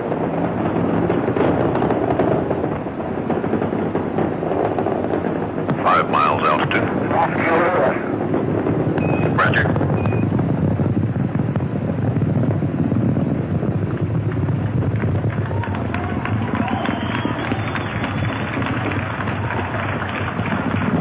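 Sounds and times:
rocket launch rumble: 0.0s - 21.0s.

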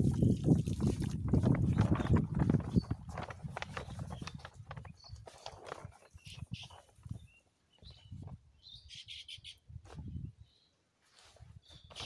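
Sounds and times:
bird chirps: 3.9s - 10.7s, 11.6s - 12.0s.

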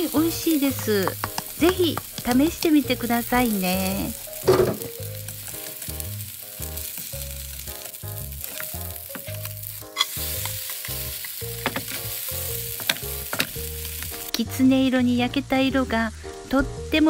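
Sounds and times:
batter sizzling in hot oil: 0.0s - 17.0s
spatula clicking against pan: 0.9s - 2.8s.

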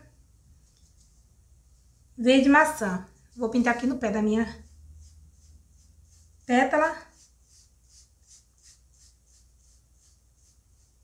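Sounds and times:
sponge rubbing on foam: 1.0s - 11.0s.

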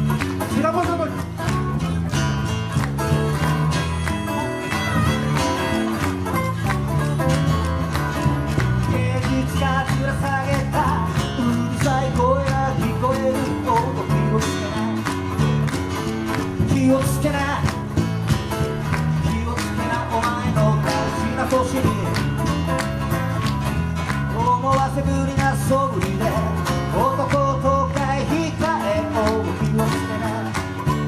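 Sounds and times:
acoustic guitars strumming: 0.0s - 31.0s
electric bass: 0.0s - 31.0s.

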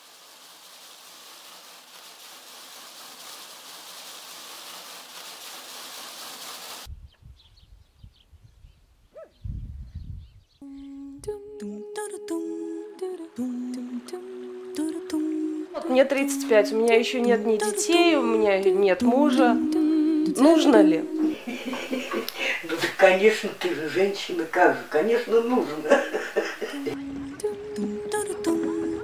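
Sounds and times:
steady hiss: 0.0s - 6.9s, 12.8s - 29.0s
person singing slow melody: 10.6s - 22.7s, 26.2s - 29.0s.

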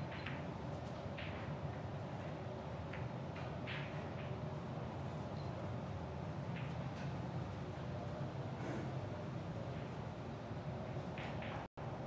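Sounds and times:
billiard balls clicking: 0.0s - 1.9s
billiard balls rolling: 0.0s - 4.5s
steady hall hum: 0.0s - 12.0s.

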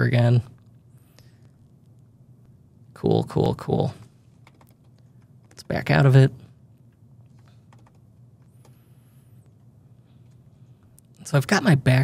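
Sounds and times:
faint high-pitched whine: 0.0s - 12.0s
low steady hum: 0.0s - 12.0s
computer keyboard keystrokes: 4.4s - 5.6s, 7.7s - 8.0s.

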